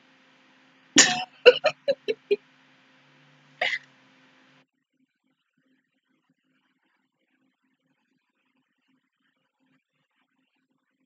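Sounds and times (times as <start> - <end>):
faint background hiss and hum: 0.0 - 4.6
woman stifling a laugh: 1.0 - 2.4.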